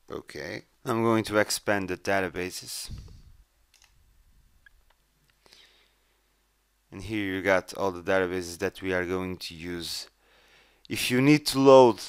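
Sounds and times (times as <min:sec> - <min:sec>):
computer mouse clicks: 0:03.7 - 0:04.0.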